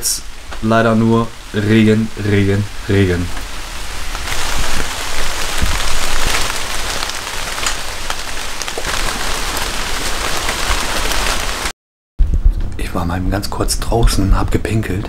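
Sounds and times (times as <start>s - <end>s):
heavy rain falling: 0.0s - 11.7s.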